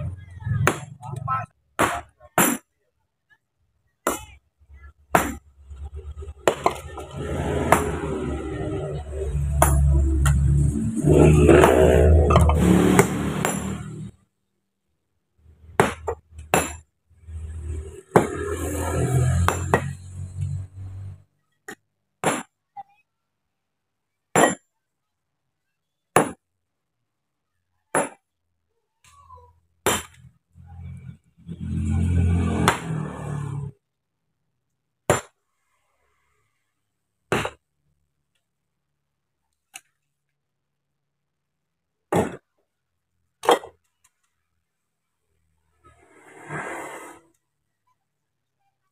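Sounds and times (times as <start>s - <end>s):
sledgehammer striking stone: 1.8s - 2.7s, 5.1s - 5.4s, 11.1s - 14.1s, 15.7s - 17.4s, 19.4s - 20.0s, 22.2s - 22.6s, 24.4s - 24.7s, 26.2s - 26.4s, 27.9s - 28.2s, 29.8s - 30.2s, 35.1s - 35.4s, 37.3s - 37.6s, 42.1s - 42.4s.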